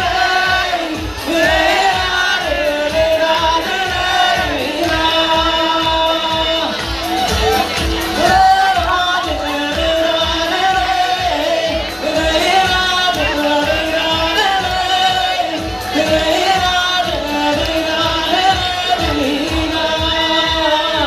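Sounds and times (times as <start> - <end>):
backing track with steady beat: 0.0 - 21.0
faint audience voices: 0.0 - 21.0
man singing into a microphone: 0.0 - 21.0.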